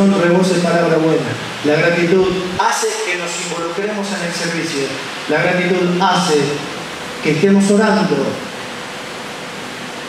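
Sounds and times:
person speaking: 0.0s - 8.5s
faint steady hum: 0.0s - 10.0s
steady background hiss: 0.0s - 10.0s.

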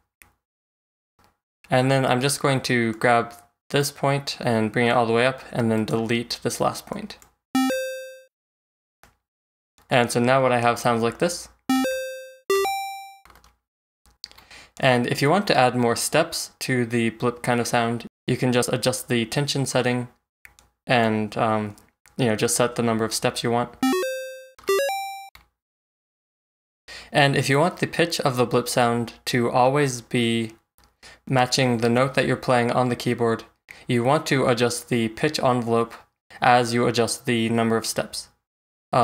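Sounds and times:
chiptune electronic blip: 7.6s - 8.3s, 11.7s - 13.3s, 23.8s - 25.3s.

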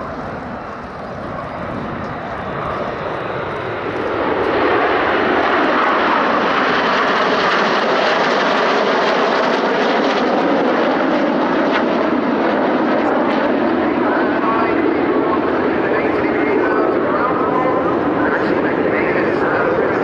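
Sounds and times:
jets passing overhead: 0.0s - 20.0s.

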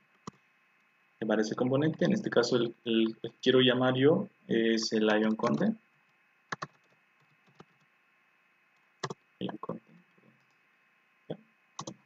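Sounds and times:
computer keyboard keystrokes: 6.5s - 7.8s, 11.8s - 12.0s.

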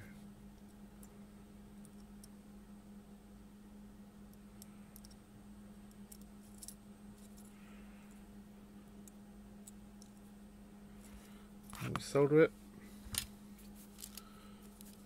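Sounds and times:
steady low hum: 0.0s - 15.0s
faint small clicks and taps: 4.3s - 5.2s.

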